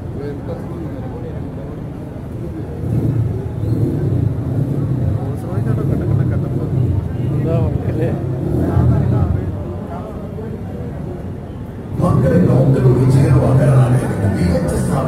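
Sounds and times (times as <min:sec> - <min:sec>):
people's voices: 0:00.0 - 0:15.0
car engine deep pulsing rumble: 0:02.2 - 0:10.0, 0:11.8 - 0:15.0.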